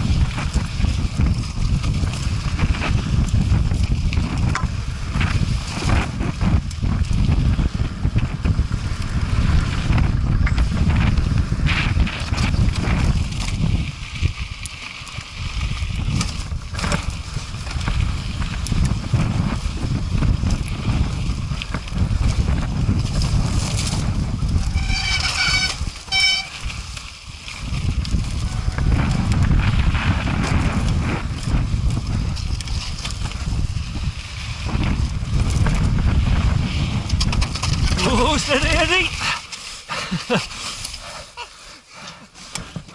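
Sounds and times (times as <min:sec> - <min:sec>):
bike knocks and rattles: 0:00.0 - 0:38.6, 0:42.5 - 0:42.9
wind buffeting microphone: 0:00.0 - 0:41.4
bike tyres on gravel: 0:00.0 - 0:42.9
short high squeals: 0:24.7 - 0:26.6.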